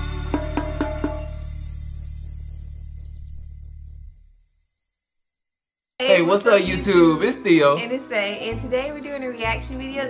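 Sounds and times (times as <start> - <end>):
high cricket-like chirping: 0.0 - 6.6.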